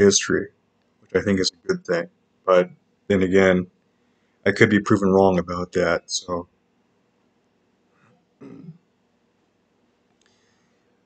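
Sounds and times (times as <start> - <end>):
man clearing his throat: 8.4 - 8.8.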